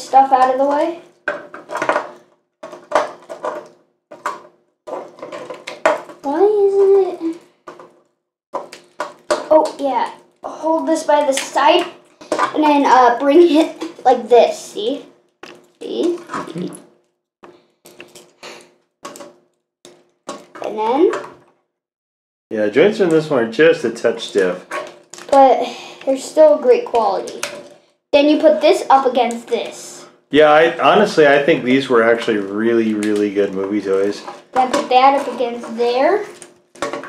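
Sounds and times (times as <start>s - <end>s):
child mumbling: 25.3s - 26.8s.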